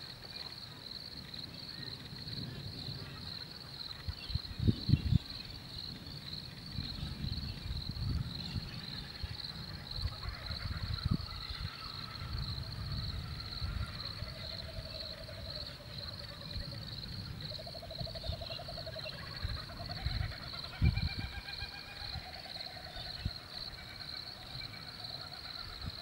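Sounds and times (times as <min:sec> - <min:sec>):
crickets chirping: 0:00.0 - 0:26.0.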